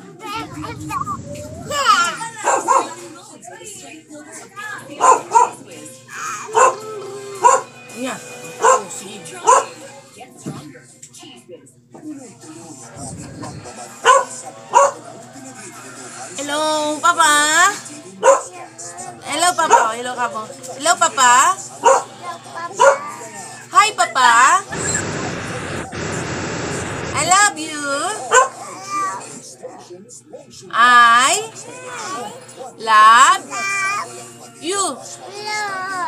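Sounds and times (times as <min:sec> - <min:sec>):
high-pitched wordless vocal calls: 0:00.5 - 0:02.2
dog barking: 0:02.4 - 0:03.0, 0:04.9 - 0:05.6, 0:06.4 - 0:07.8, 0:08.6 - 0:09.8, 0:14.0 - 0:15.1, 0:18.2 - 0:18.6, 0:19.6 - 0:20.0, 0:21.8 - 0:23.2, 0:28.2 - 0:28.8.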